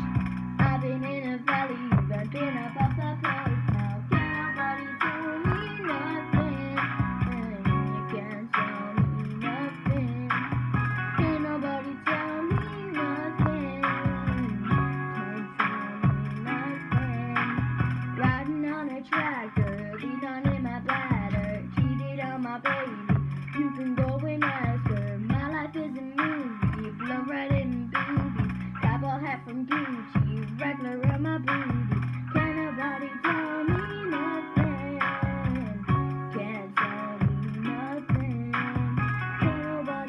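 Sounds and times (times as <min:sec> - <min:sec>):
song with plucked guitar and beat: 0:00.0 - 0:40.0.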